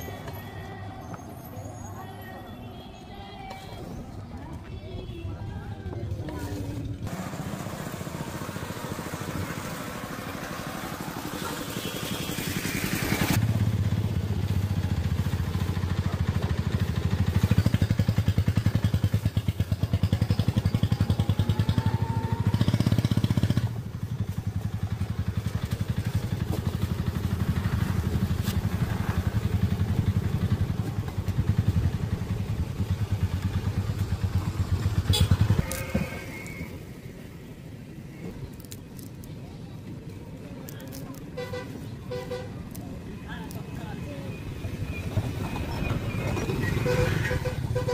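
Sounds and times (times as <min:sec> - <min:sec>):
street noise: 0:00.0 - 0:47.9.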